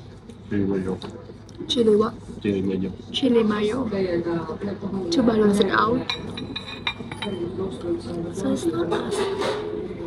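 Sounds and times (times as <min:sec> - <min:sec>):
tableware clinking: 0:06.0 - 0:07.7, 0:08.8 - 0:09.8.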